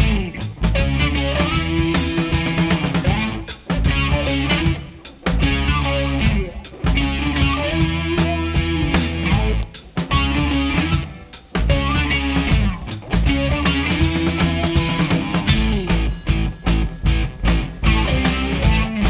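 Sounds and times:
bass guitar: 0.0 - 19.0
drum kit: 0.0 - 19.0
electric guitar: 0.0 - 19.0.

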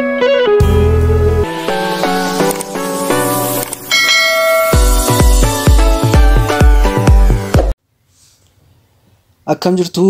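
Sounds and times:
intro music: 0.0 - 7.8
bright bell chime: 3.9 - 5.0
heavy bass beat: 4.1 - 7.7.

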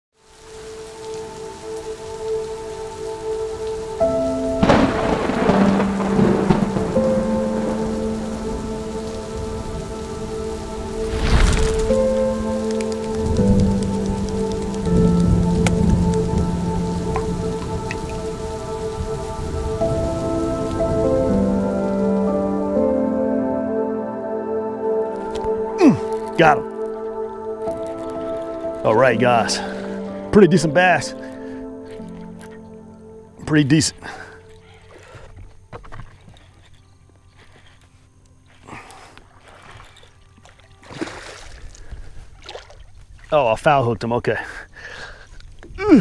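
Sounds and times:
heavy rain: 0.2 - 23.6, 25.0 - 35.2, 44.3 - 46.0
ambient music slow chords: 0.2 - 43.3
thunder crashes: 4.6 - 8.8, 10.8 - 12.3.

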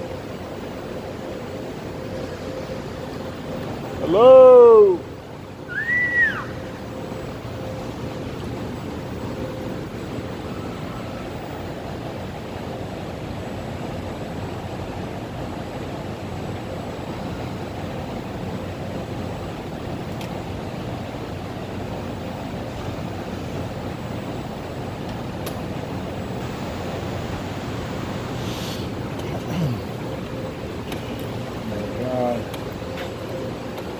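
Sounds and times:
factory building hum: 0.0 - 33.9.

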